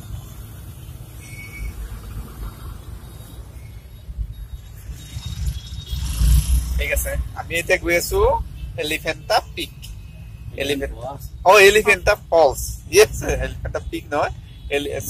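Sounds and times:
road noise: 0.0s - 15.0s
voices: 6.8s - 15.0s.

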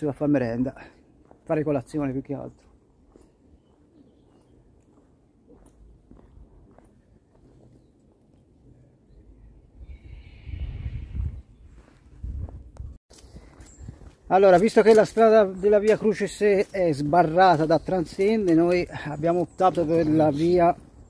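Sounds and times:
footsteps of people walking: 1.0s - 8.5s, 11.7s - 21.0s.

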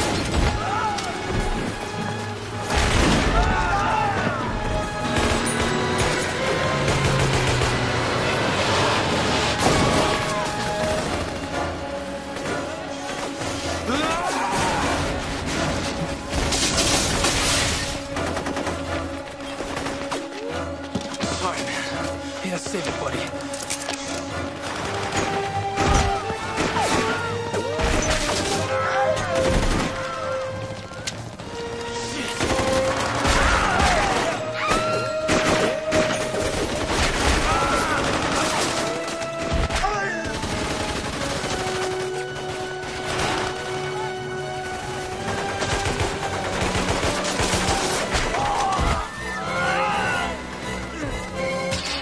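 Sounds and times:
background music with held notes: 0.0s - 52.0s
rapid gunfire: 5.0s - 8.9s, 24.4s - 27.3s, 32.3s - 34.4s, 35.2s - 48.6s.

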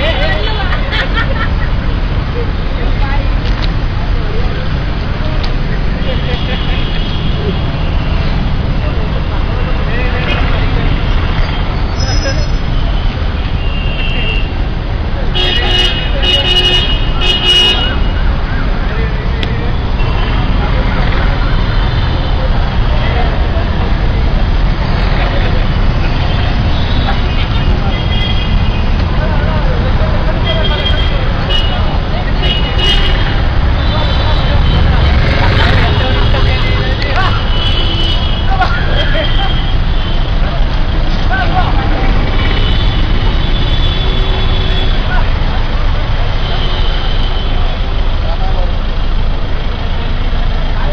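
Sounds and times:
people talking: 0.0s - 13.5s, 15.0s - 46.5s, 47.4s - 50.9s
traffic rumble: 0.0s - 50.9s
vehicle horns tooting: 6.1s - 8.2s, 10.2s - 14.6s, 15.3s - 18.3s, 19.9s - 23.0s, 25.9s - 29.0s, 30.3s - 45.3s, 46.3s - 47.7s.

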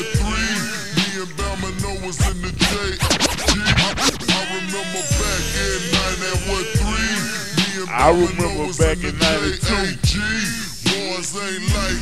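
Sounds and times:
slowed hip hop beat: 0.0s - 12.0s
rapid turntable scratches: 0.5s - 12.0s.

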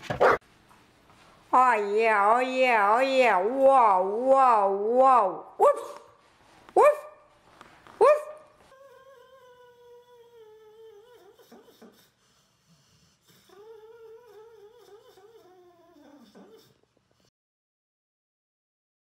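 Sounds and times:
dog whining: 8.1s - 12.1s, 13.2s - 16.9s.

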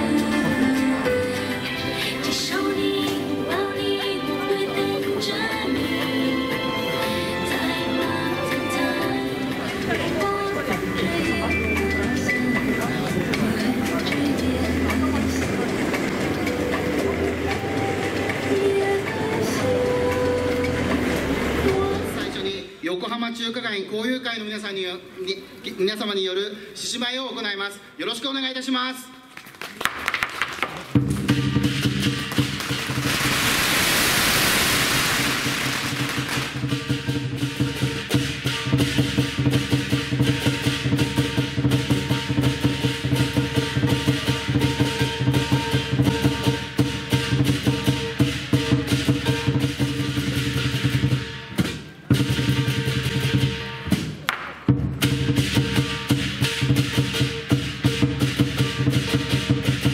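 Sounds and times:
large drum beaten fast: 30.9s - 59.9s
cymbals ringing: 31.3s - 54.3s, 55.0s - 59.9s
gong ringing: 36.4s - 51.5s.

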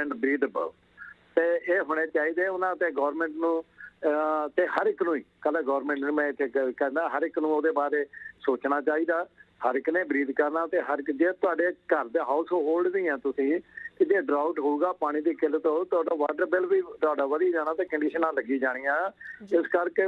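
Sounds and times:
man talking over telephone: 0.0s - 20.0s.

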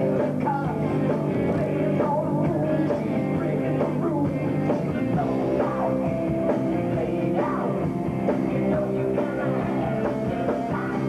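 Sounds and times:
live rock band playing: 0.0s - 11.0s
sung vocals: 0.0s - 11.0s.

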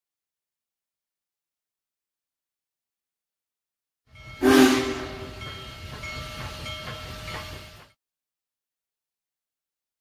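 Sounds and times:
train running: 4.1s - 8.0s
train horn blast: 4.4s - 5.4s.

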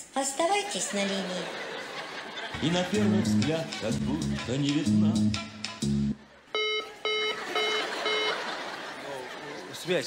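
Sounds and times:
telephone busy tone beeps: 6.6s - 8.6s.

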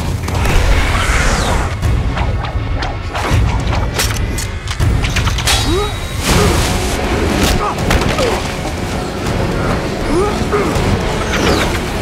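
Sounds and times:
loud whooshes: 0.3s - 3.7s.

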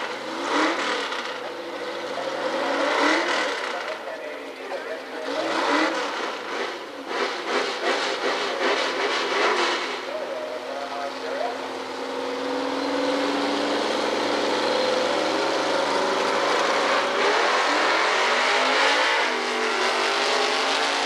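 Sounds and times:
drag race car engines: 0.0s - 21.0s.

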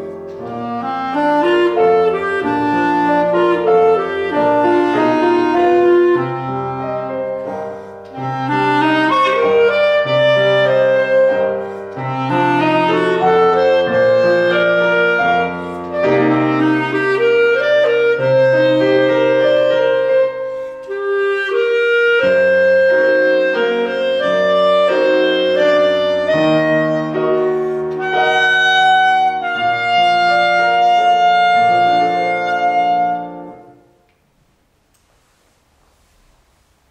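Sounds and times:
clarinet melody: 0.0s - 34.1s
piano accompaniment: 0.0s - 34.9s.

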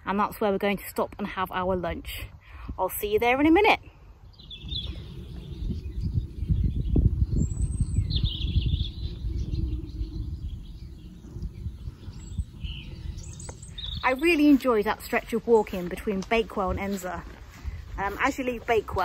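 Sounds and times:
small birds chirping: 0.0s - 19.0s
wind rumble on microphone: 0.0s - 19.0s.

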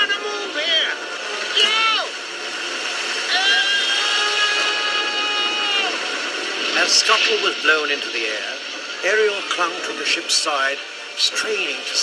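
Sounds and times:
voice shouting: 0.1s - 2.2s, 3.3s - 6.1s
steady wind noise: 1.0s - 12.0s
long high yell: 1.5s - 2.1s, 3.3s - 6.1s.

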